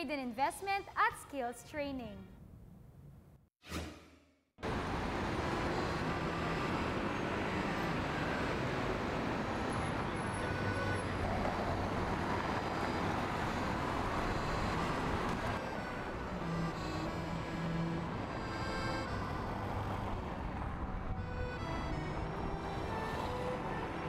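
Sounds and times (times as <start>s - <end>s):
cars passing on street: 4.6s - 24.0s.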